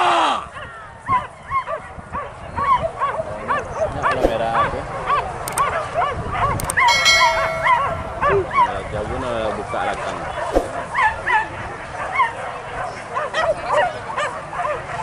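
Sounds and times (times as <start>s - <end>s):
brief steady tone: 6.9s - 8.6s.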